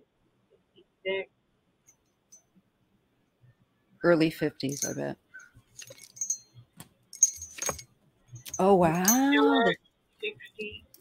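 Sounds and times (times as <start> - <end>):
metal pendulum chain jingling: 4.6 - 9.7.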